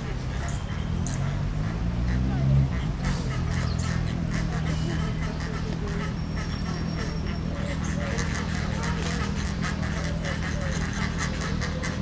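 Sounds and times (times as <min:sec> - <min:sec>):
flamingos calling: 0:00.0 - 0:12.0.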